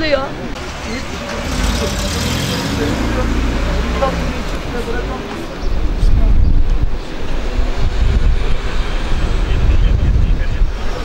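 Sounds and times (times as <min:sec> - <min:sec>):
faint voices: 0:00.0 - 0:11.0
road traffic rumble and tyre hiss: 0:00.0 - 0:11.0.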